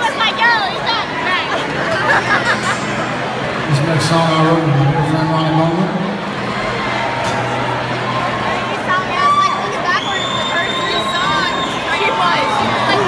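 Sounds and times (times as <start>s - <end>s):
audience cheering and chattering: 0.0s - 13.0s
shrill whistle: 9.8s - 12.1s.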